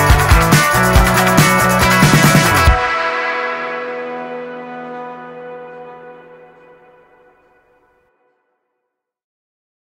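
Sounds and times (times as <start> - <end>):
sustained ringing chord: 2.7 - 8.4.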